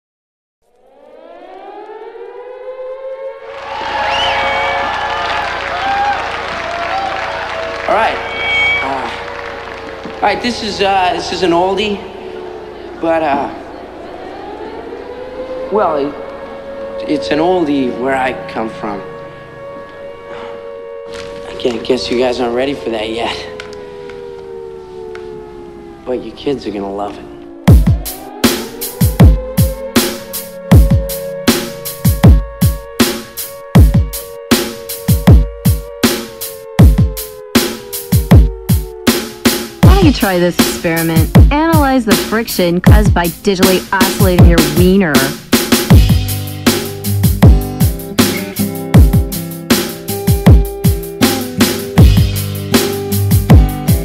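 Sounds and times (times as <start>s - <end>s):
air raid siren winding up: 0.6s - 54.0s
voices: 6.6s - 20.6s, 21.2s - 28.9s, 39.8s - 45.4s.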